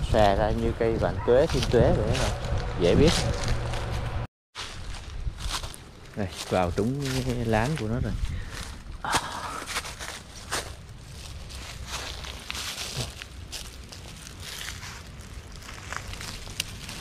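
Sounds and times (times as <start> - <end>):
dry leaves and twigs crackling: 0.0 - 17.0.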